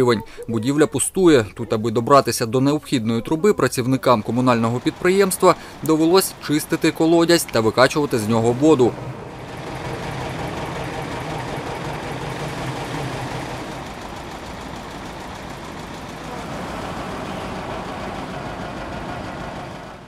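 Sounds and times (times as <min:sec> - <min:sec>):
tractor engine running: 0:00.0 - 0:20.0
water pump sucking water: 0:04.2 - 0:20.0.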